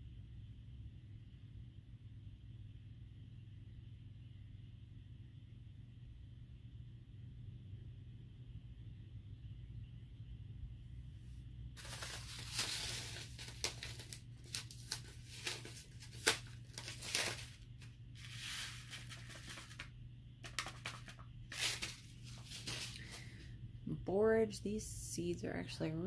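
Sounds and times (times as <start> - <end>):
paper packet rustling and tearing: 11.8 - 23.4.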